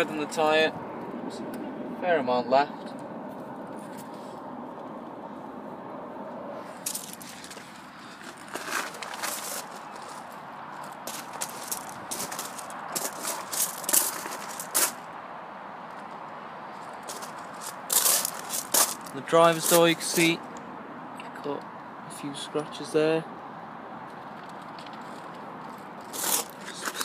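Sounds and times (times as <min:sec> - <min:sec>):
footsteps on gravel: 0:06.8 - 0:15.0, 0:16.8 - 0:20.4, 0:26.0 - 0:27.0.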